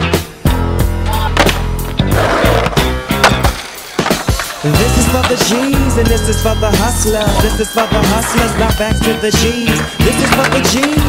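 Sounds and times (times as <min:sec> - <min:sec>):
hip-hop music: 0:00.0 - 0:11.0
skateboard wheels on concrete: 0:00.1 - 0:11.0
skateboard clack: 0:01.1 - 0:11.0.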